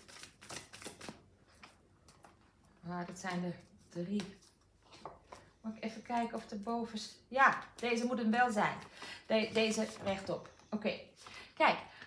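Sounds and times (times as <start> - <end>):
cards shuffled by hand: 0.0 - 2.4.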